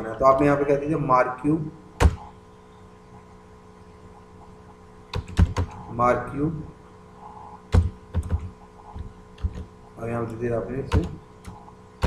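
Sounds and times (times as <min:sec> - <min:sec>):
typing on computer keyboard: 0:05.1 - 0:05.8, 0:07.7 - 0:09.7, 0:10.9 - 0:11.6.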